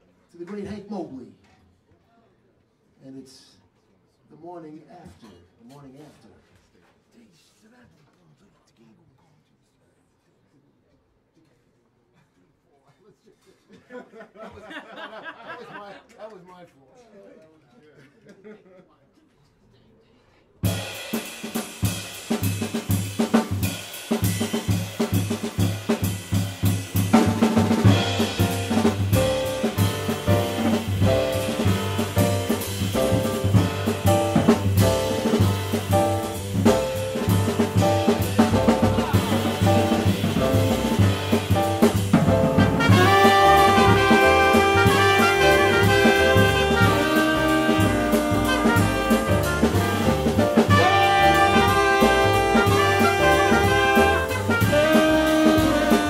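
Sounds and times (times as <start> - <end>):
drum kit snare and rim hits: 20.6 - 56.0
grand piano comping: 24.6 - 56.0
upright bass line: 27.1 - 56.0.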